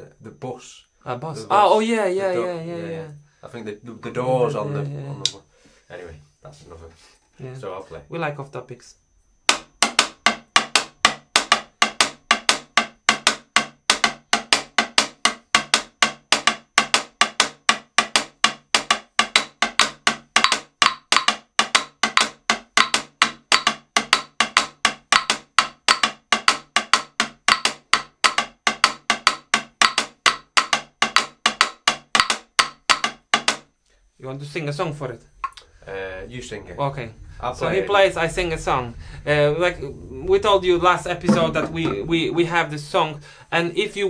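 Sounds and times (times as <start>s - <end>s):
wooden sticks clicking on tube: 9.5s - 33.7s, 35.4s - 35.7s.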